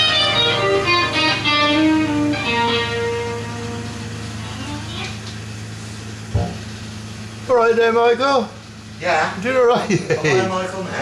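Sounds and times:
electric guitar through amplifier: 0.0s - 7.2s
steady low hum: 0.0s - 11.0s.

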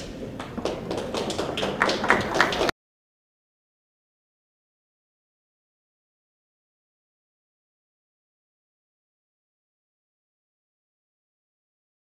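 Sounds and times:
room background hubbub: 0.0s - 2.7s.

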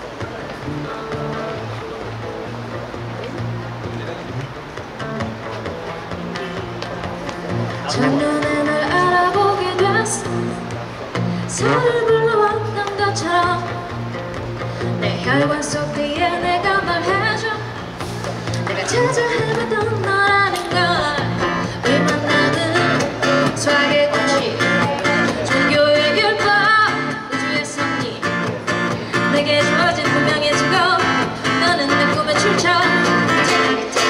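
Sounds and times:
acoustic guitar strumming: 0.0s - 34.0s
person singing: 7.7s - 13.9s, 14.8s - 17.8s, 18.6s - 34.0s.

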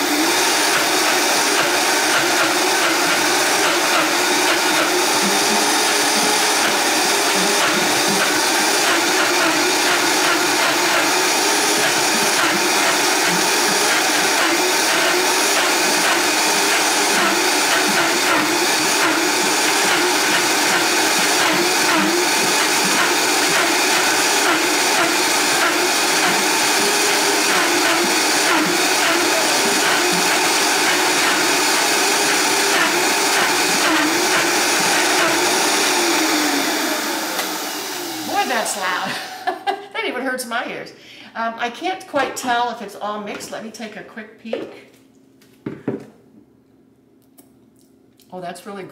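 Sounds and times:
blender motor running: 0.0s - 39.6s.

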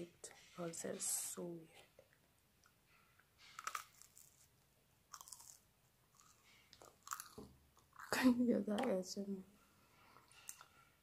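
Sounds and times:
person chewing crunchy food: 3.5s - 4.5s, 5.1s - 8.2s.

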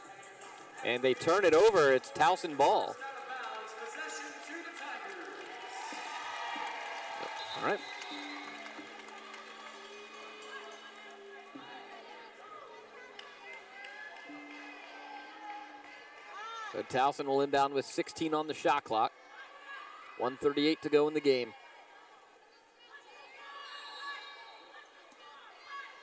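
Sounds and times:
crowd murmur: 5.3s - 17.2s.

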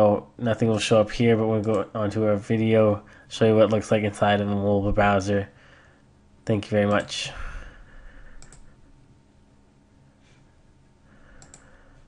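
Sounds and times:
computer mouse clicks: 8.4s - 8.7s, 11.4s - 11.8s.

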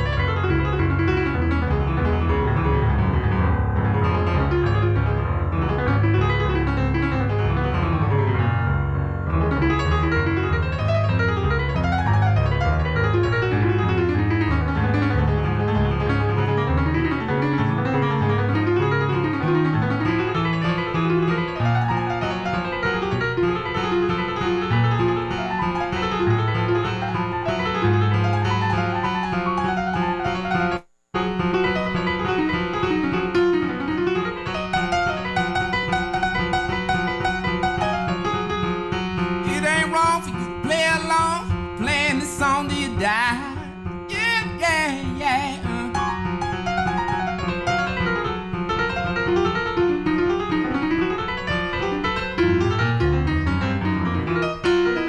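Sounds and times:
grand piano playing: 0.0s - 55.0s.

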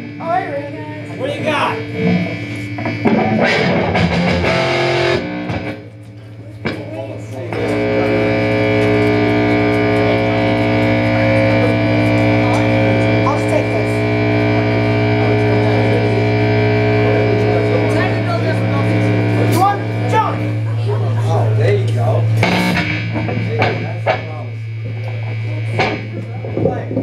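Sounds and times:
amplifier hum: 0.0s - 27.0s
distorted electric guitar: 0.0s - 27.0s.

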